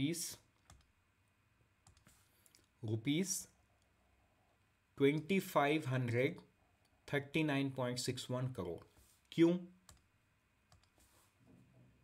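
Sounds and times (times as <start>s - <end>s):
computer mouse clicks: 1.8s - 2.8s, 10.7s - 11.0s.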